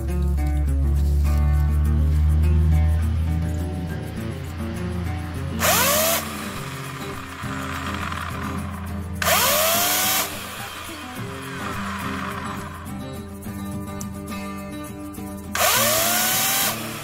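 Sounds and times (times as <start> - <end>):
background music: 0.0 - 17.0
electric chainsaw revving: 4.0 - 14.1, 15.5 - 17.0.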